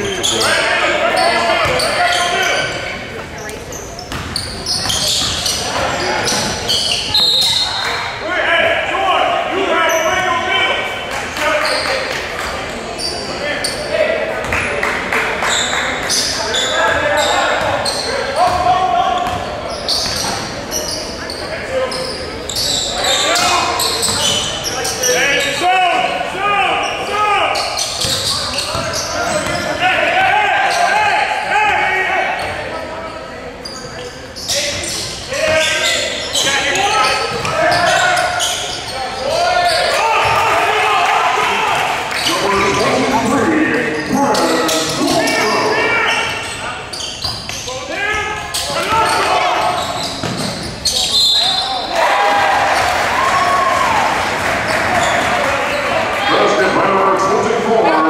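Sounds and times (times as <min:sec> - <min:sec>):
indistinct shouts and chatter: 0:00.0 - 0:58.0.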